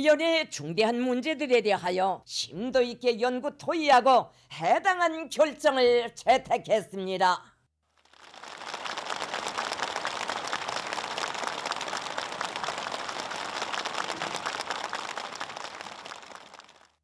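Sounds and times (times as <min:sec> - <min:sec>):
crowd applauding: 0:08.0 - 0:17.0.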